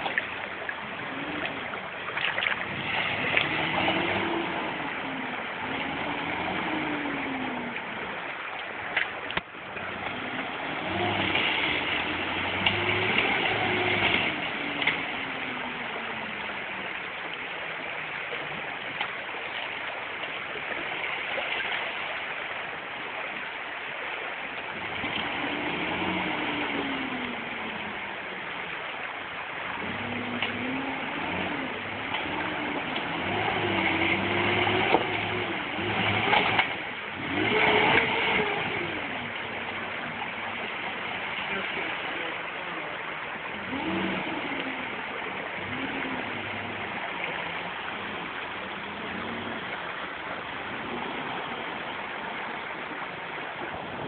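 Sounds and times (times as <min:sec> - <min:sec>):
creek water rushing: 0:00.0 - 0:54.0
car engine revving: 0:00.8 - 0:08.3, 0:09.2 - 0:17.0, 0:24.8 - 0:28.5, 0:29.6 - 0:54.0.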